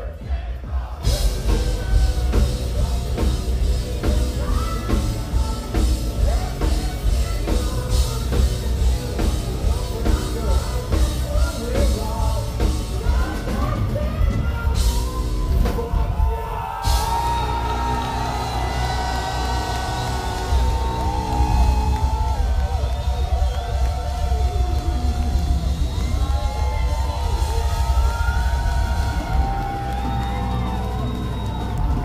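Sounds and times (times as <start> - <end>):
crowd cheering and whooping: 14.6 - 32.0.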